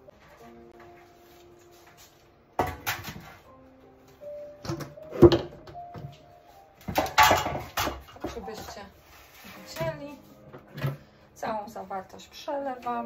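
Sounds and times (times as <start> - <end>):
background music: 0.0 - 13.0
metal tray clattering: 6.8 - 8.9.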